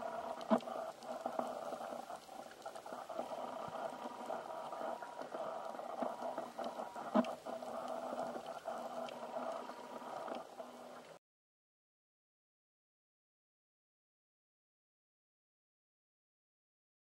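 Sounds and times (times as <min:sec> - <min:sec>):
faint steady hums: 0:00.0 - 0:11.2
underwater crackling hiss: 0:00.0 - 0:11.2.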